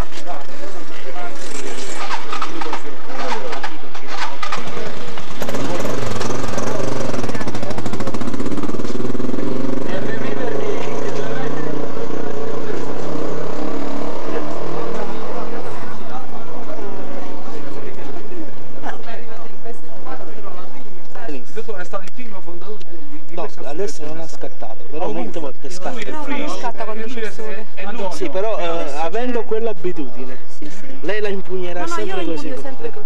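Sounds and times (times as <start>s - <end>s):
people talking: 0.0s - 33.0s
motor engine running: 0.3s - 17.6s.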